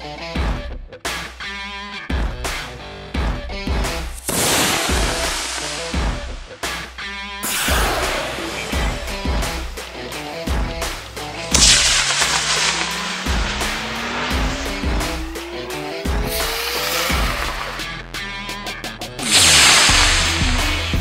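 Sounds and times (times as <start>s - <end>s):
rock music: 0.0s - 21.0s
rocket motor hissing: 4.2s - 6.6s, 7.4s - 17.9s, 19.2s - 21.0s.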